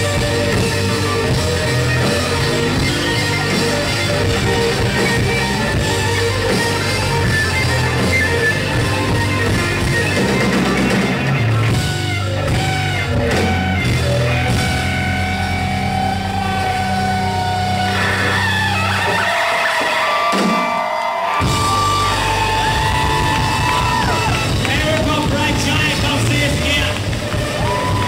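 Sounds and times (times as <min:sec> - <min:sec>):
rock band playing live: 0:00.0 - 0:28.0.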